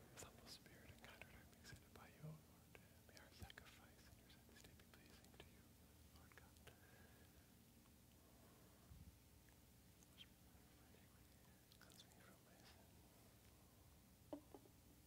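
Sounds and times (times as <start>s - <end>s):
man whispering: 0.0s - 7.4s, 10.0s - 13.0s.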